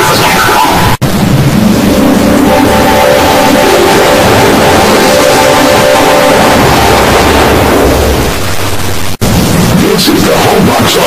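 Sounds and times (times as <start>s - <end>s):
distorted noisy roar: 0.0s - 11.0s.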